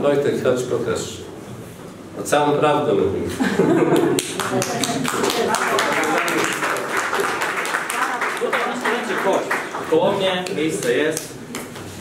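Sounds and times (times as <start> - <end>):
audience clapping: 3.9 - 11.8.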